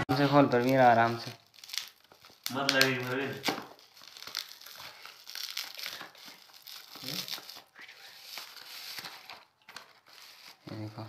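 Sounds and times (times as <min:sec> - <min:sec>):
plastic packaging crinkling: 0:00.1 - 0:11.0.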